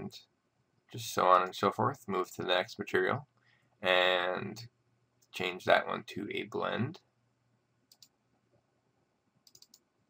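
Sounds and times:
computer mouse clicks: 7.9 - 8.2, 9.4 - 9.9.

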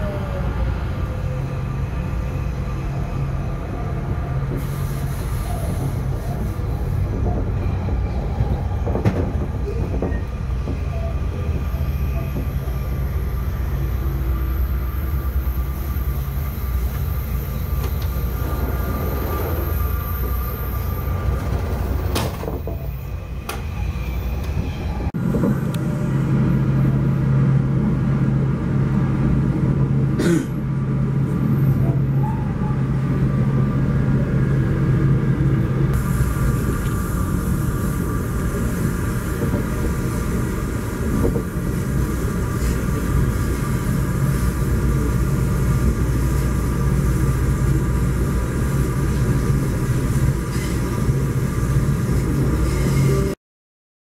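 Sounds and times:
passing train: 0.0 - 53.4
train rumble inside coach: 0.0 - 53.4.

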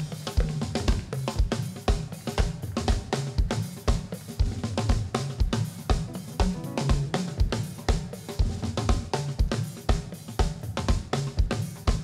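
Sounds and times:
kick drum steady beat: 0.0 - 12.0.

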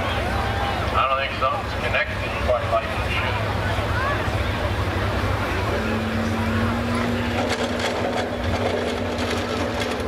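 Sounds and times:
diesel truck engine idling: 0.0 - 10.0.

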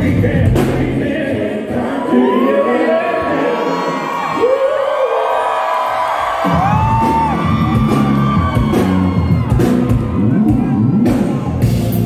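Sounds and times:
live band music: 0.0 - 1.9, 6.4 - 12.0
singing: 0.0 - 4.3
crowd cheering: 1.7 - 11.9.

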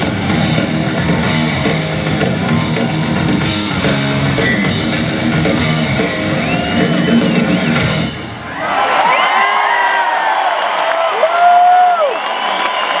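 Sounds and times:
rock band playing: 0.0 - 8.6
crowd cheering and shouting: 0.0 - 13.0.

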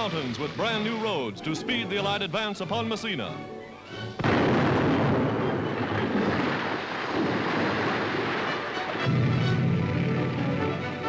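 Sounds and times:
music: 0.0 - 6.4, 8.1 - 11.0
rock blast with long rumble: 9.0 - 11.0.

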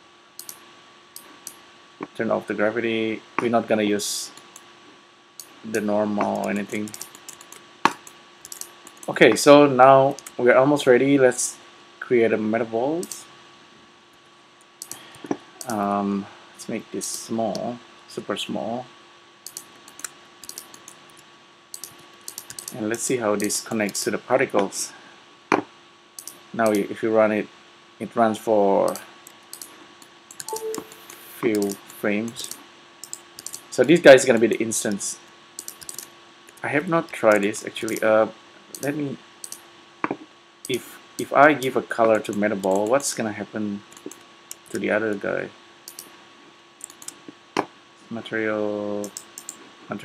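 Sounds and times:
computer keyboard and mouse clicks: 0.4 - 0.6, 6.2 - 9.2, 10.2 - 10.4, 13.0 - 13.2, 14.8 - 15.8, 19.5 - 21.2, 21.8 - 22.8, 26.2 - 26.8, 28.9 - 33.7, 35.6 - 38.1, 38.7 - 39.6, 42.6 - 43.0, 43.9 - 44.7, 45.9 - 46.1, 46.8 - 47.2, 49.0 - 49.6.

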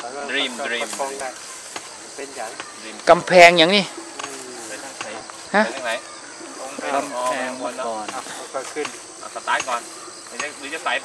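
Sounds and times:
insects buzzing: 0.0 - 11.0
people's voices: 0.0 - 11.0.

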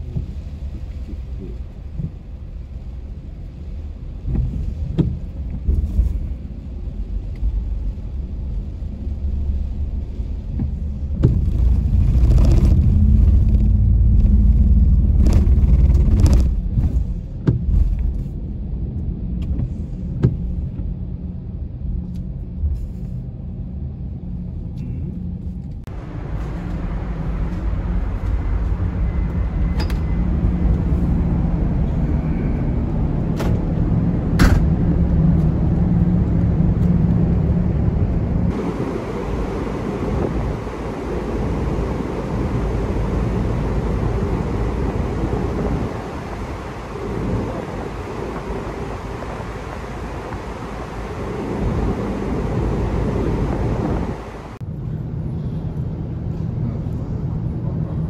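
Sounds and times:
ship noise: 0.0 - 58.0
wind: 0.0 - 58.0.

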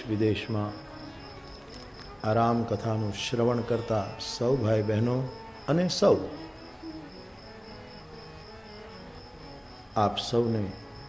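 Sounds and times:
insect chirring: 0.0 - 11.0.

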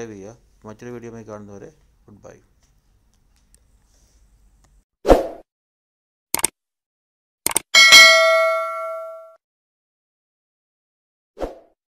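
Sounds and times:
notification bell chime: 7.8 - 9.4.

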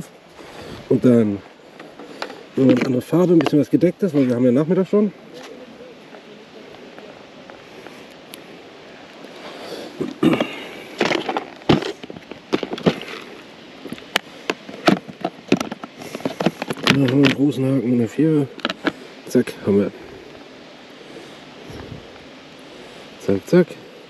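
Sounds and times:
rustling: 5.3 - 19.3.

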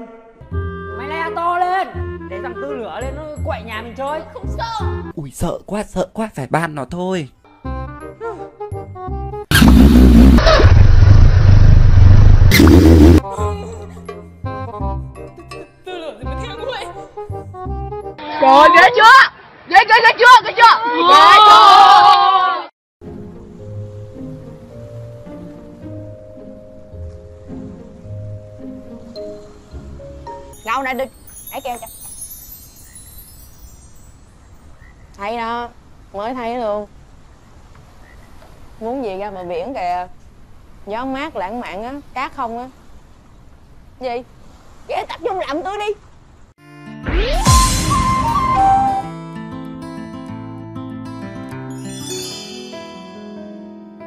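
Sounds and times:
background music: 0.0 - 5.2, 7.5 - 9.6, 12.5 - 18.4, 23.0 - 34.1, 46.6 - 54.0
loud deep noisy sound effect: 9.5 - 13.2, 47.1 - 48.9
soft high chime tones: 30.5 - 34.8, 51.7 - 54.0.

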